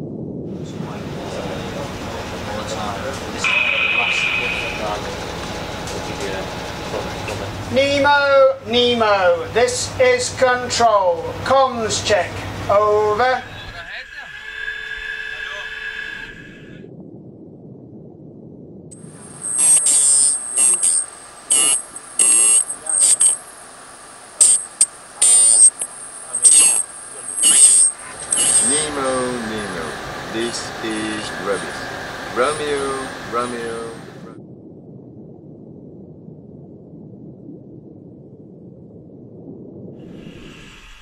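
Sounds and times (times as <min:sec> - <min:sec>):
low steady hum: 0:00.0 - 0:41.0
garbled distorted radio transmission: 0:00.7 - 0:08.1, 0:12.7 - 0:16.8, 0:18.9 - 0:34.4
shrill high whistle: 0:03.4 - 0:05.0, 0:19.4 - 0:23.4, 0:25.2 - 0:25.8, 0:26.4 - 0:29.2
high-pitched electronic tone: 0:03.4 - 0:05.3, 0:18.9 - 0:34.2.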